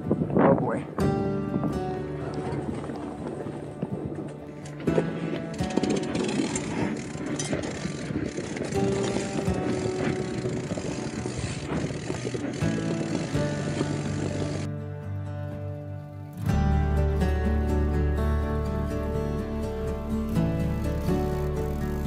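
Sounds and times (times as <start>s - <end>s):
background music: 0.0s - 22.0s
mountain bike rattling on rocky trail: 2.2s - 14.7s, 20.7s - 22.0s.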